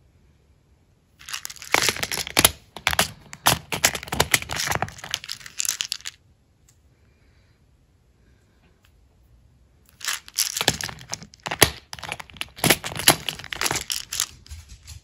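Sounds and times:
plastic pods clattering and clicking: 1.2 - 6.2, 9.9 - 14.7
small charms rattling: 1.2 - 6.2, 9.9 - 14.8.

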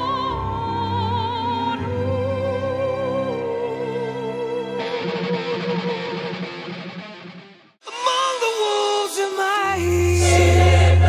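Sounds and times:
strummed electric guitar: 4.6 - 7.8.

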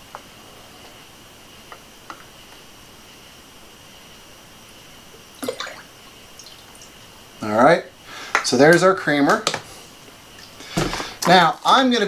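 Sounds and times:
steady low hiss: 0.0 - 12.0
liquid trickling: 5.4 - 7.1.

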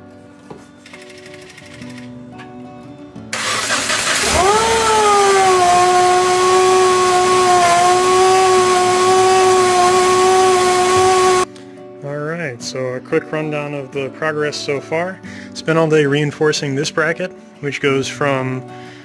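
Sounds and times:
engine idling: 3.4 - 11.4
engine cranking and starting: 3.4 - 11.5
supercharger whine: 3.4 - 11.5.

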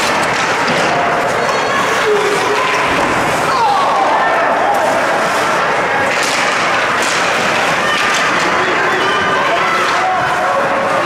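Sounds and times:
skates scraping ice: 0.0 - 11.0
spectators shouting: 0.1 - 11.0.

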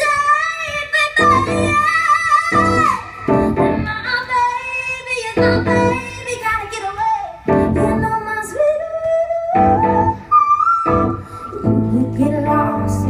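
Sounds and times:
woman singing: 0.0 - 13.0
keyboard chords: 1.2 - 1.9, 2.5 - 4.2, 5.4 - 6.2, 7.4 - 8.4, 9.6 - 13.0
loud accented band chords: 2.5 - 4.0.

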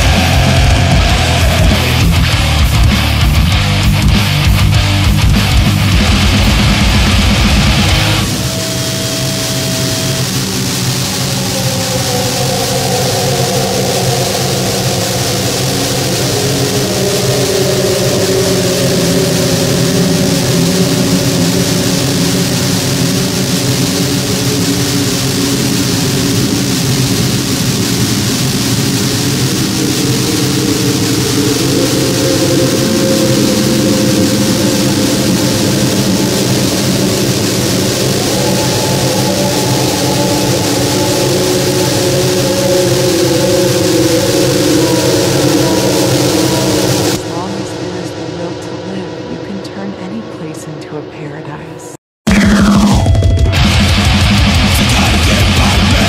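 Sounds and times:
high hiss: 0.0 - 49.6
distorted noise drone: 0.0 - 56.0.

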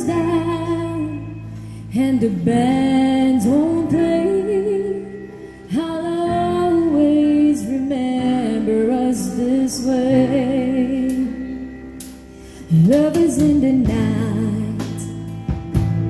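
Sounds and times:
woman singing into microphone: 0.0 - 15.4
electric guitar: 0.0 - 16.0.

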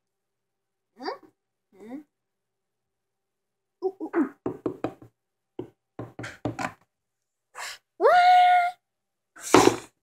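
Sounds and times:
plastic toys knocking on wooden table: 4.5 - 6.8.

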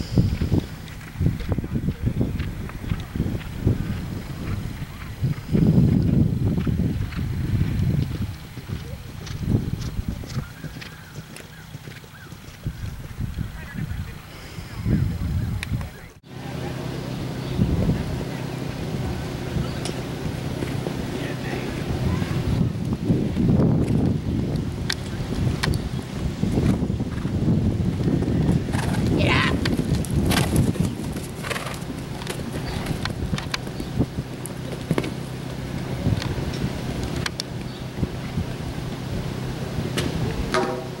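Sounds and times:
wind buffeting microphone: 0.0 - 41.0
horse hoofbeats galloping: 0.4 - 14.3, 18.2 - 38.4.

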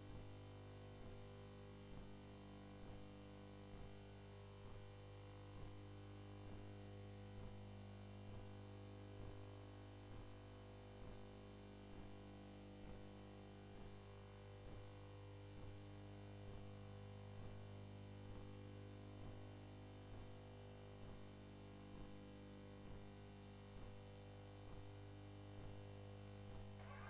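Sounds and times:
faint regular ticks: 0.0 - 12.2, 14.6 - 27.0
low electrical hum: 0.0 - 27.0.

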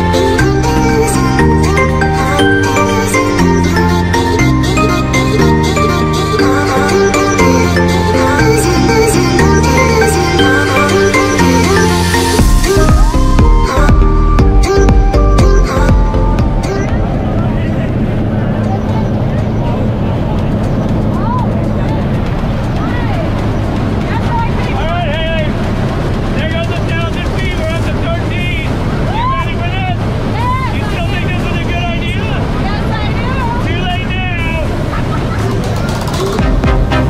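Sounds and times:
propeller plane engine drone: 16.0 - 37.0.

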